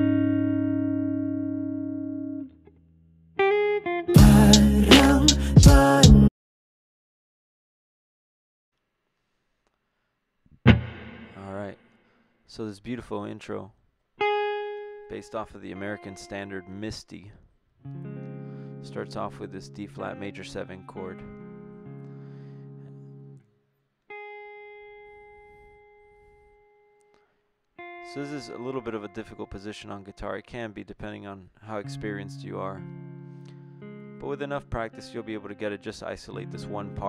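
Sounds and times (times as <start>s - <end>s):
clean electric guitar chord: 0.0s - 2.4s
plucked electric guitar note ringing: 0.0s - 2.4s, 10.7s - 11.8s
electric guitar chord: 0.0s - 2.5s, 10.7s - 11.6s, 17.9s - 23.4s, 27.8s - 29.4s, 32.8s - 34.4s.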